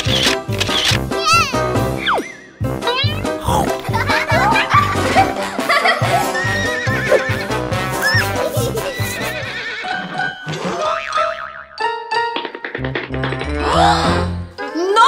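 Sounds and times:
upbeat children's music: 0.0s - 15.0s.

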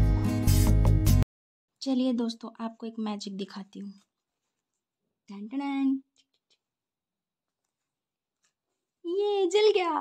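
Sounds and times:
woman speaking: 1.8s - 4.1s, 5.3s - 6.2s, 9.0s - 10.0s.

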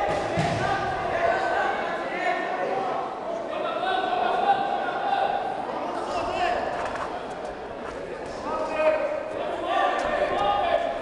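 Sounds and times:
people shouting in echoing hall: 0.0s - 6.7s.

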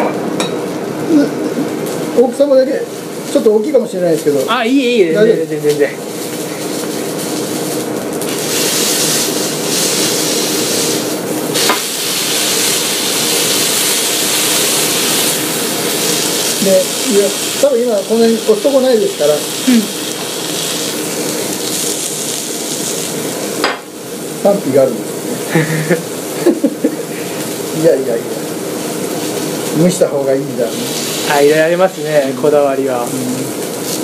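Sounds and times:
food sizzling on griddle: 0.6s - 34.0s.

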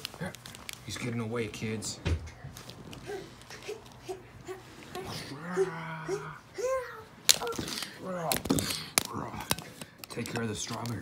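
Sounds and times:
low moo-like vocal groan: 5.1s - 6.5s.

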